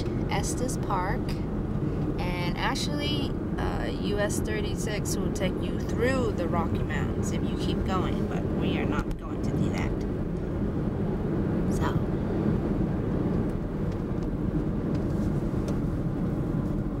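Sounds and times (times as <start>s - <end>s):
road and engine noise in car: 0.0s - 17.0s.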